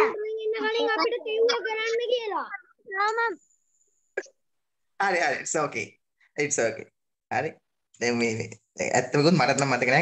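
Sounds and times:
child speaking over video call: 0.0 - 4.4.

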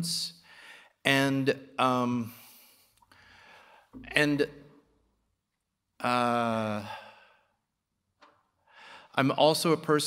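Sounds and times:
short inhale: 0.4 - 1.0, 2.3 - 4.0, 8.6 - 9.2.

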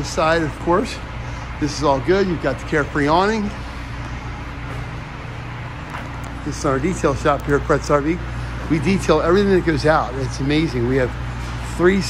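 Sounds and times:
machine hum with hiss: 0.0 - 12.0.

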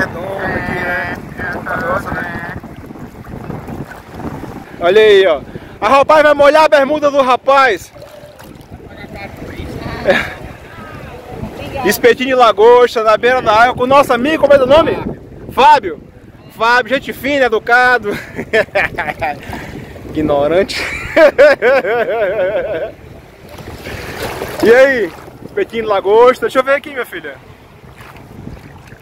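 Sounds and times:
small waves washing: 0.0 - 13.0, 14.0 - 21.3, 22.8 - 29.0
wind buffeting microphone: 0.0 - 29.0
faint voices: 7.8 - 12.1.

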